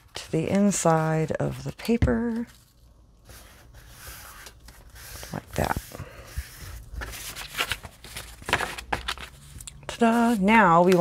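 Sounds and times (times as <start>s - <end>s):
paper rustling under hands: 0.0s - 11.0s.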